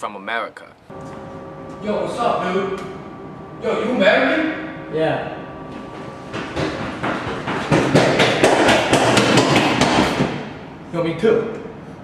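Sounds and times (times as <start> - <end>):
running footsteps on hard floor: 5.7 - 10.4.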